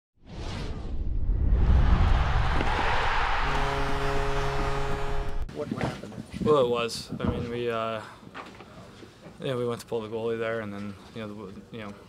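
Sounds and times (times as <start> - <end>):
loud rushing whoosh: 0.2 - 5.5
deep rumble: 0.3 - 4.0
held musical chord: 3.6 - 5.5.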